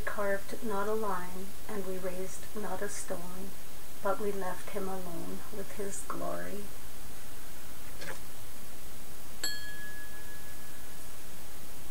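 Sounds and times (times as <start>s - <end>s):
steady hiss: 0.0s - 11.9s
bell ding: 9.4s - 10.7s.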